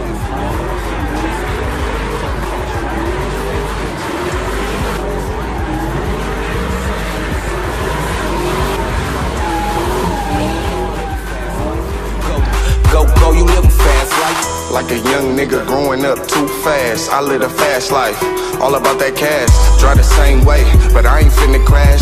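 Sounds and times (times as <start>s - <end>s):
tyres squealing: 0.0s - 14.5s
car engine revving: 0.0s - 22.0s
hip hop music bass: 0.0s - 22.0s.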